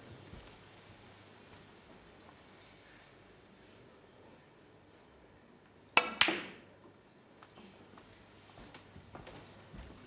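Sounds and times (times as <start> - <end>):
snooker balls clicking together: 5.9 - 7.0.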